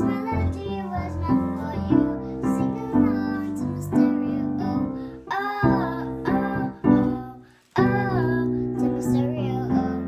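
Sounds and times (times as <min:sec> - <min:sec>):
girl singing pop song: 0:00.0 - 0:10.0.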